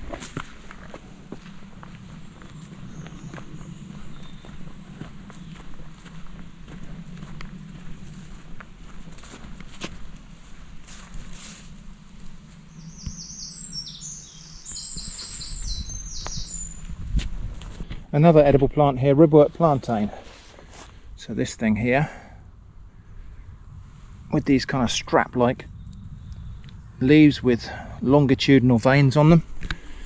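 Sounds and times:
footsteps on dirt path: 0:00.0 - 0:21.2
low steady hum: 0:00.0 - 0:30.0
bird singing high notes: 0:12.7 - 0:16.9.

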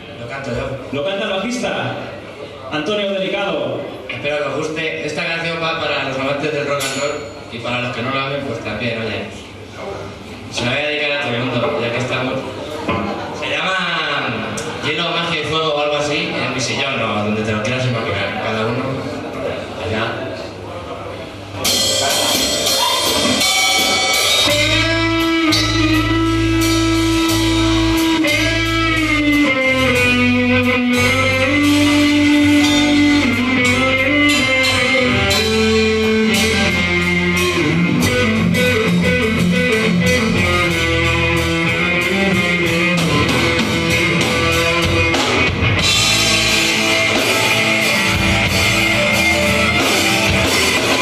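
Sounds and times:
hard rock band playing: 0:21.4 - 0:51.0
bending guitar line: 0:22.4 - 0:51.0.

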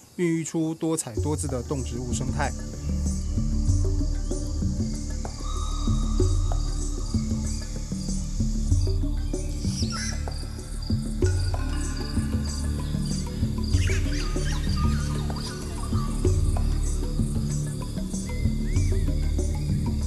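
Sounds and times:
insects chirping: 0:00.0 - 0:20.0
background music held notes: 0:00.2 - 0:20.0.

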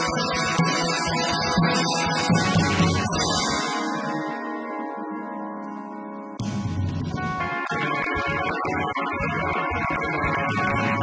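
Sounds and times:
ringing guitar chords: 0:00.0 - 0:11.0.

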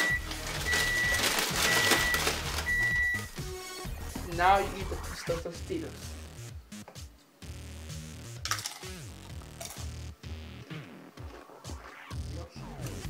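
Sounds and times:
music with repeating bass line: 0:02.5 - 0:13.0.

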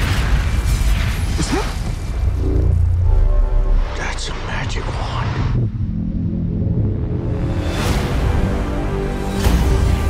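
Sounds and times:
low rumbling drone: 0:02.0 - 0:08.8.

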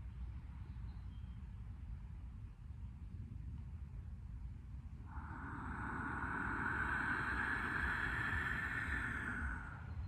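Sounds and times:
low background rumble: 0:00.0 - 0:10.0
long slow breath out: 0:05.0 - 0:10.0.

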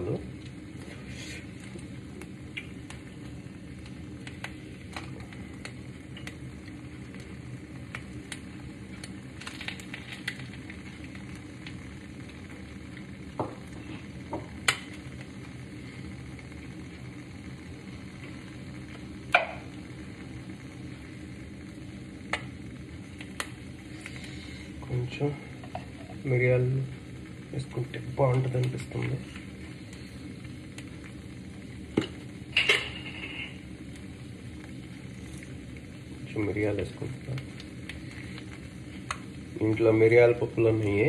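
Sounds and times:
egg sizzling in a pan: 0:00.0 - 0:41.0.

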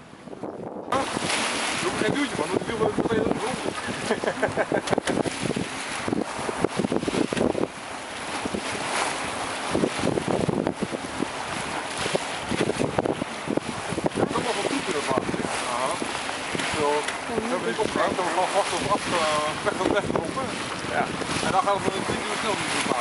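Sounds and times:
water splashing along hull: 0:00.0 - 0:23.0
wind buffeting microphone: 0:00.0 - 0:23.0.

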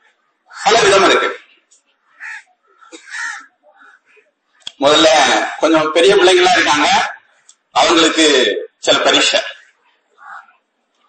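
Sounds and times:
bird cawing: 0:00.0 - 0:01.0, 0:01.9 - 0:04.8, 0:09.4 - 0:10.6
man speaking: 0:00.6 - 0:01.6, 0:04.7 - 0:09.6.

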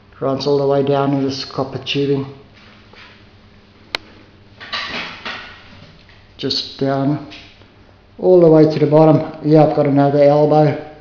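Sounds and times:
low background hiss: 0:00.0 - 0:11.0.

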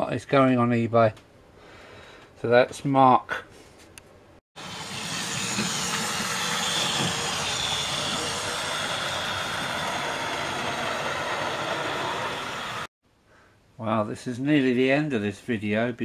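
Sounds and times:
model train running on track: 0:04.6 - 0:12.9.

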